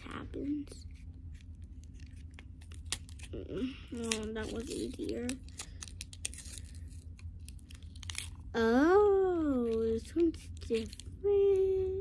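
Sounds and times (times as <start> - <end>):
plastic packaging crinkling and clicking: 1.4 - 8.5, 9.5 - 11.7.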